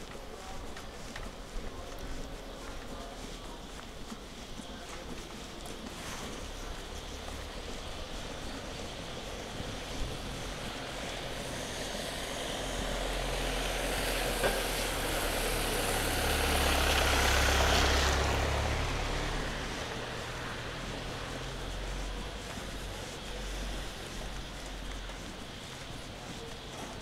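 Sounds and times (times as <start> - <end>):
tyres hissing on wet asphalt: 0.0 - 27.0
van engine passing: 6.1 - 25.7.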